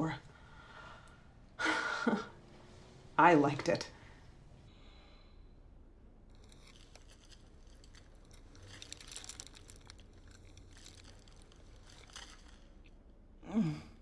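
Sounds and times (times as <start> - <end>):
aluminium foil crinkling: 6.3 - 13.1
chewing: 6.3 - 13.1.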